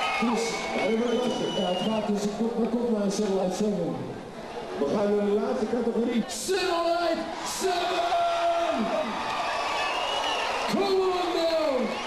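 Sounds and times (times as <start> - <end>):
crowd noise in large hall: 0.0 - 12.0.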